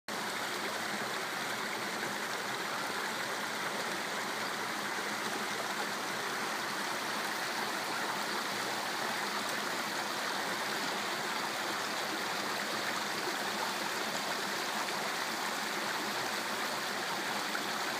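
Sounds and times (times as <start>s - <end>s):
stream running over rocks: 0.1s - 17.9s.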